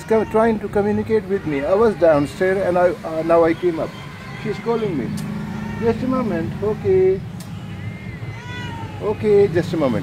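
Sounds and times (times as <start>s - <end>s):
cat meowing: 0.0s - 9.8s.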